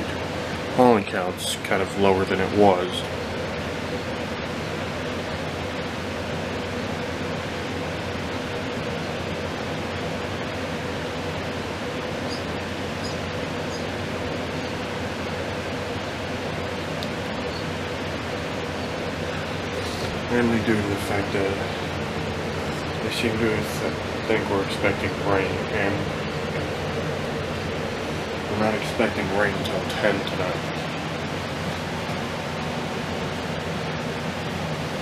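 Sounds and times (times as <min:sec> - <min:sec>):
faint steady hum: 0:00.0 - 0:35.0
room noise hiss: 0:00.0 - 0:35.0.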